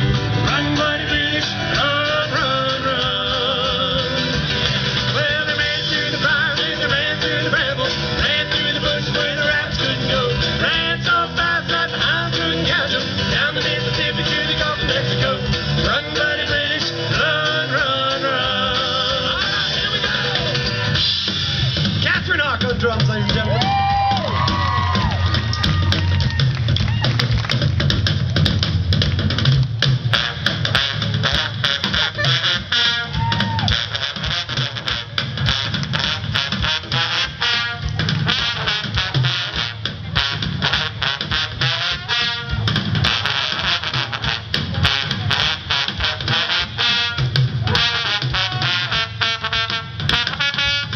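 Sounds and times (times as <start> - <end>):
trombones: 0.0 - 21.8, 29.9 - 50.9
busy drum kit: 0.0 - 50.9
live rock band playing: 0.0 - 50.9.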